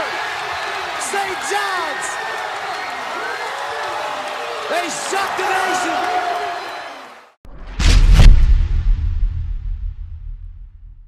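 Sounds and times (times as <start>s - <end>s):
arena crowd cheering and applauding: 0.0s - 7.4s
deep boom: 7.5s - 11.0s.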